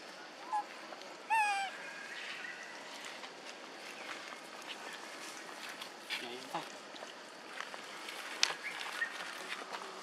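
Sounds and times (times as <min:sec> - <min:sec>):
macaque coo call: 0:00.4 - 0:00.7, 0:01.3 - 0:01.8.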